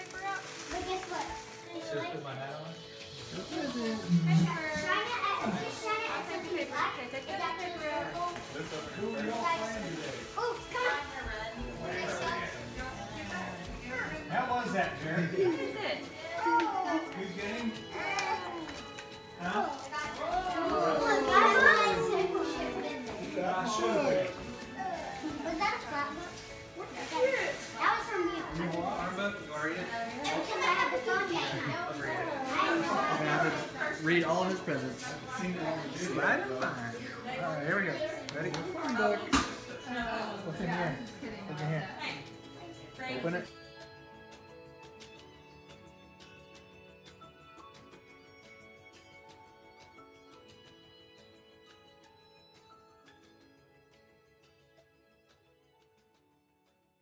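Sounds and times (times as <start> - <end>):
adult chatter: 0.0 - 54.3
background music: 0.0 - 57.0
young children's voices: 20.2 - 23.0.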